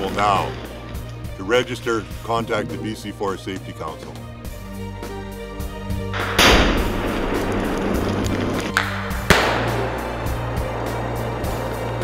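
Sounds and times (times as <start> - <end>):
background music: 0.0 - 12.0
explosive charges detonating: 6.2 - 8.2, 8.8 - 11.1.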